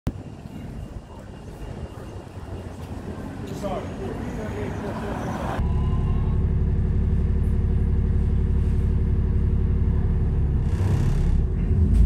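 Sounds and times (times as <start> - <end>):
bus approaching: 0.1 - 12.0
street traffic rumble: 0.1 - 12.0.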